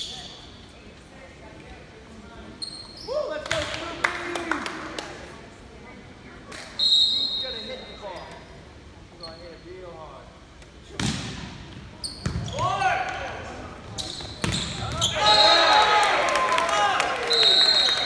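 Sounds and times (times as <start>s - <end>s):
referee's whistle: 6.8s - 7.9s, 14.0s - 15.7s, 17.2s - 18.0s
volleyball hits: 10.9s - 11.6s, 14.2s - 15.3s
players and spectators shouting: 14.9s - 18.0s.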